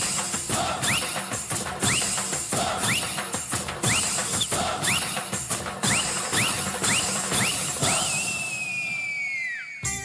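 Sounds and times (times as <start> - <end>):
shrill whistling: 0.8 - 10.0.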